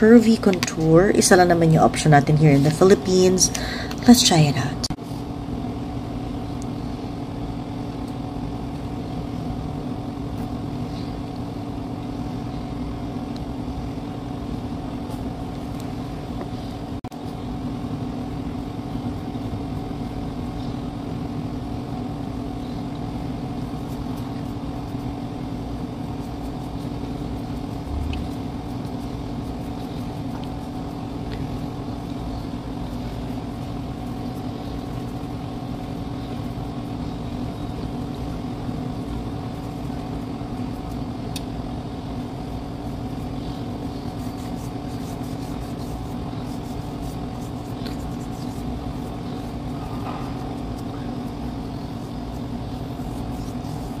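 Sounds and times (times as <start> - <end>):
steady machine hum: 0.0 - 54.0.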